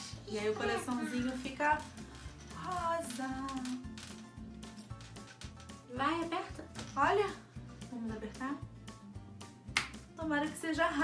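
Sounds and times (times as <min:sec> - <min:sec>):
fingers rubbing plastic toy: 0:00.0 - 0:05.9
faint background music: 0:00.0 - 0:11.0.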